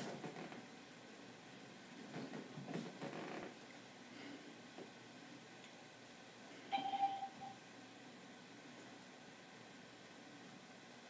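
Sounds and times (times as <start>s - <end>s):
electronic beep: 6.7s - 7.6s.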